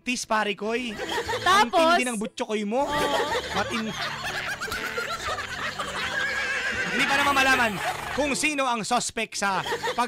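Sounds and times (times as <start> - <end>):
people laughing: 0.8 - 2.2, 2.8 - 8.5, 9.5 - 10.0
high-pitched squealing laugh: 2.9 - 8.2.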